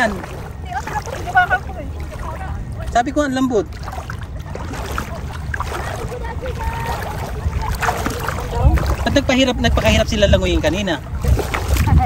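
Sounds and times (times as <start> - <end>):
faint voices: 0.0 - 3.0, 3.7 - 12.0
seawater sloshing around wading legs: 0.0 - 12.0
steady low rumble: 0.0 - 12.0.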